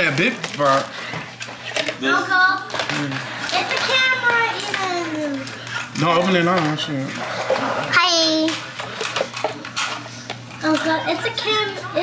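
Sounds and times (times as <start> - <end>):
plastic toy pieces rustling and clicking: 2.7 - 5.8.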